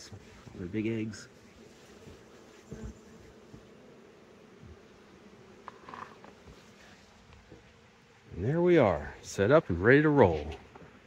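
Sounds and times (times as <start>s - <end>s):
bees buzzing: 0.0s - 9.2s.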